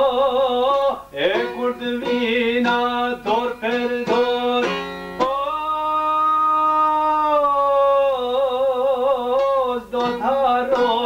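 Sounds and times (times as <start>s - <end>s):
plucked lute: 0.0s - 7.2s, 8.4s - 11.0s
man singing with vibrato: 0.0s - 11.0s.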